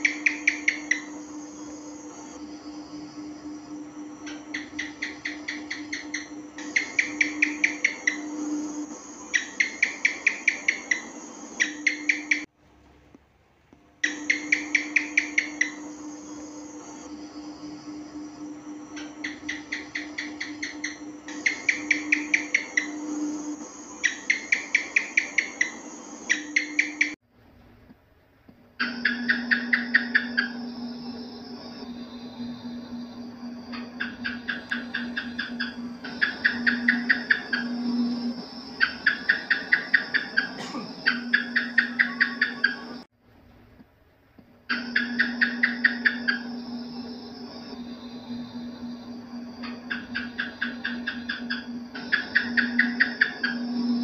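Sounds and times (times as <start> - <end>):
geckos chirping: 0.0 - 12.5, 14.0 - 27.2, 28.8 - 43.1, 44.7 - 54.0
steady low hum: 0.0 - 54.0.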